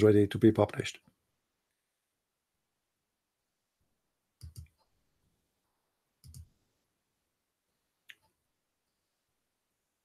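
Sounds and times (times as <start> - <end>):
computer mouse clicks: 4.4 - 4.9, 6.2 - 6.5.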